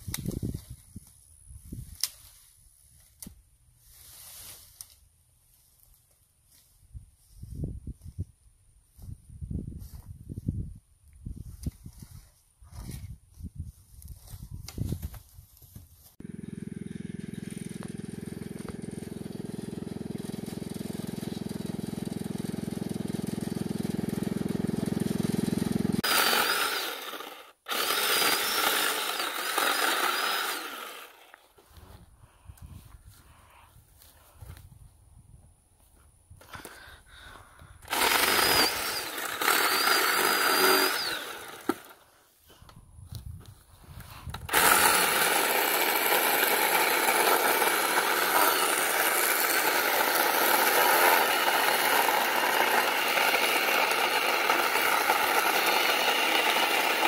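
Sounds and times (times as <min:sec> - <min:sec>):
electric chainsaw cutting log: 0:16.2 - 0:31.4, 0:37.8 - 0:42.0, 0:44.4 - 0:57.0.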